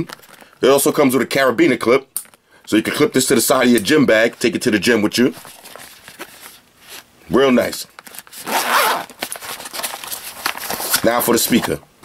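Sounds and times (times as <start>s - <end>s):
zipper pulled open on fabric case: 8.4s - 9.1s.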